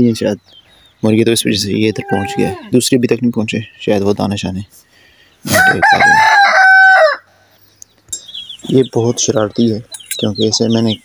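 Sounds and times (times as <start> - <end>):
rooster crowing: 5.5 - 7.3.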